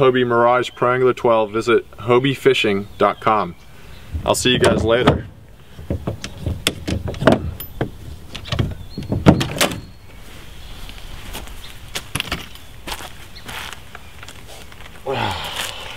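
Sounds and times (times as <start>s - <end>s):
kayak seat clicks and knocks: 4.6s - 9.9s.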